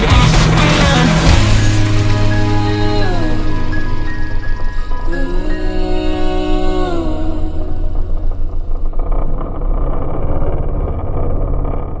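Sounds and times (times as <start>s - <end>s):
jet ski engine running: 0.0s - 9.8s.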